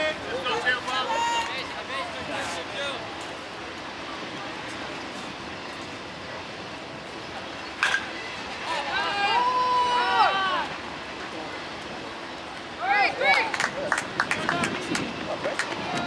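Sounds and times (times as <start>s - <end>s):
people calling out: 0.0s - 1.8s, 8.6s - 10.8s.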